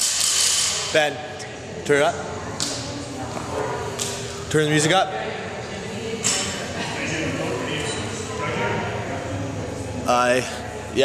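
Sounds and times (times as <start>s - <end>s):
indistinct people talking: 0.7s - 11.0s.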